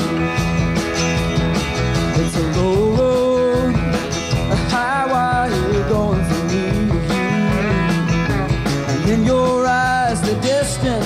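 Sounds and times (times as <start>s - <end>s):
bass guitar: 0.0s - 11.0s
drum beat: 0.0s - 11.0s
sliding electric guitar lead: 0.0s - 11.0s.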